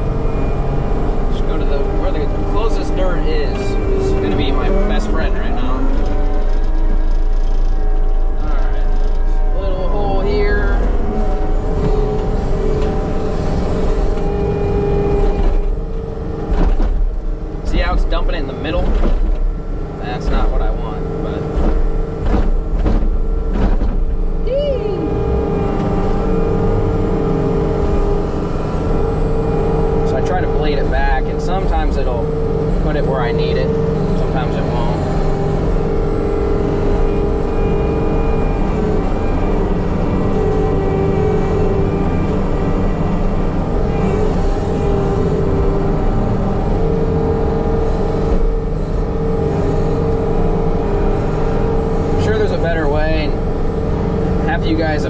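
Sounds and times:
skid loader engine revving: 0.0s - 55.0s.

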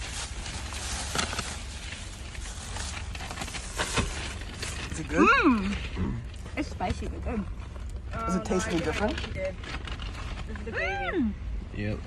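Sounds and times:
food packaging rustling: 0.0s - 11.0s
low hum in car: 0.0s - 12.0s.

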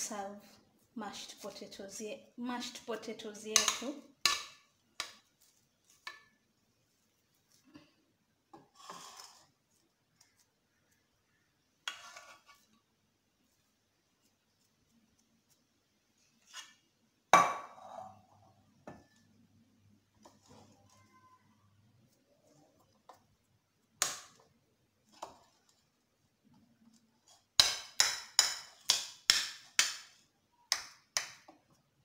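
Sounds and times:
metal spoon scraping a pot: 8.6s - 9.6s, 11.8s - 12.8s.

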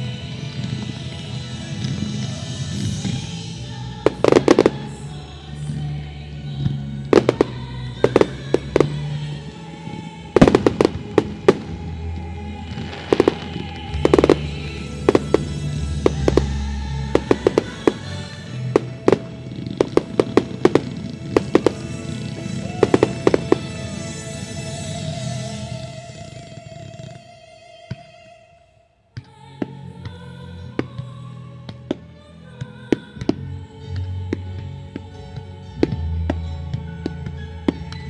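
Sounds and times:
music playing: 0.0s - 27.8s, 29.2s - 38.0s
fireworks bangs: 4.1s - 5.1s, 7.1s - 27.1s.

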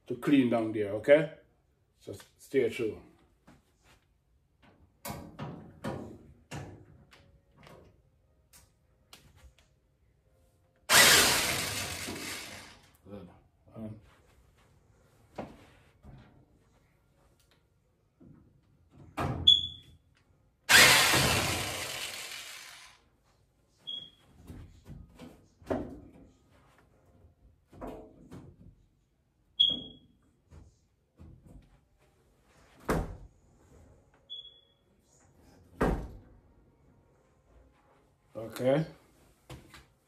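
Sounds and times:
short high squeaks: 23.8s - 24.2s.

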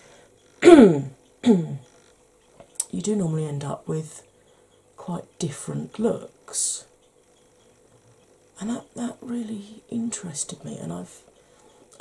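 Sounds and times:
woman clearing her throat: 0.6s - 1.8s.

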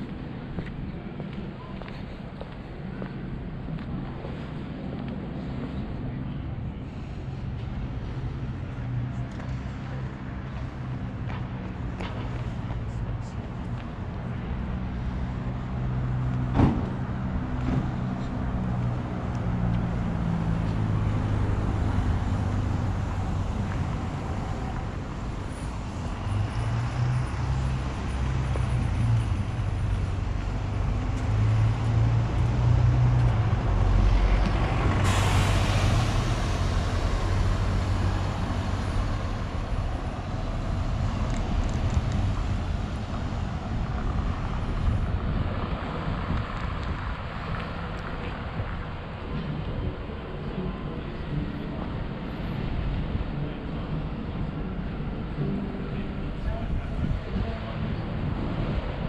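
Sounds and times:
heavy vehicle engine running: 0.0s - 59.0s
passing traffic: 0.0s - 59.0s.

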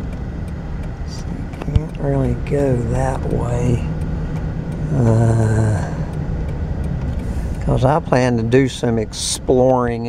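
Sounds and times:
car engine and tyres rumbling: 0.0s - 10.0s
man saying uhh: 4.9s - 6.1s.

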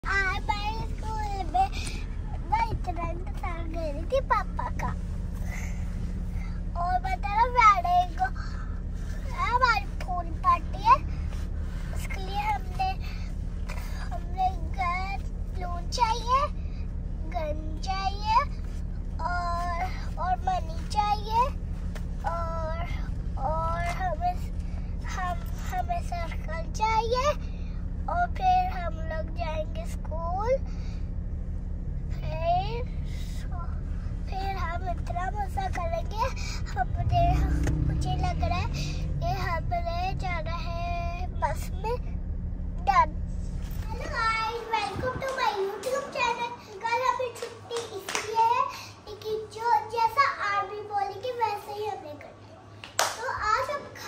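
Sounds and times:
car cabin hum: 0.0s - 30.7s, 31.4s - 47.0s.

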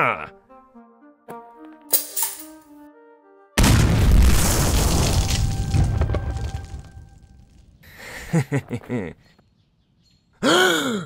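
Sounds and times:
light music: 0.0s - 3.6s
explosion rumbling: 3.6s - 7.8s.

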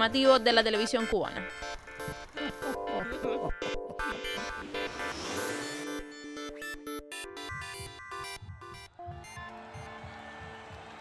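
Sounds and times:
electronic music with low beat: 0.0s - 10.2s.

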